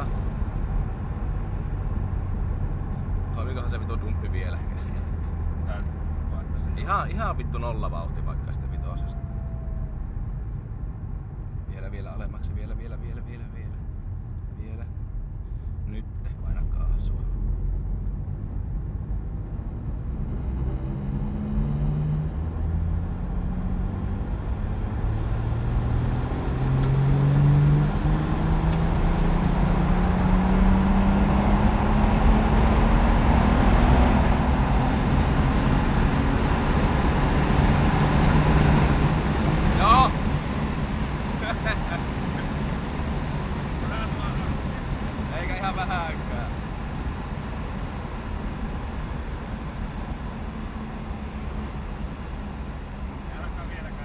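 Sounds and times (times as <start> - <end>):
car engine revving at full throttle: 0.0 - 9.8, 17.7 - 54.0.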